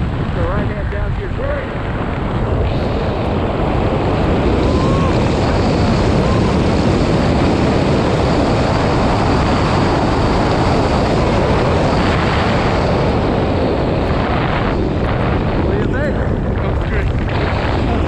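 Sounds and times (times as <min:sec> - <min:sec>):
wind roaring over microphone: 0:00.0 - 0:18.0.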